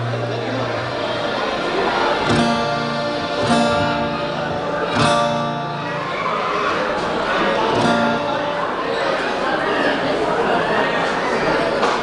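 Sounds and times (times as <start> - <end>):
acoustic guitar strumming chords: 0.0 - 9.4
voices talking: 0.0 - 12.0.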